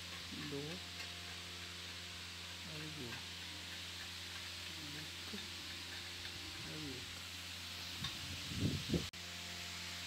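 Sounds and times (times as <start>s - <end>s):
steady low hum and hiss: 0.0s - 10.0s.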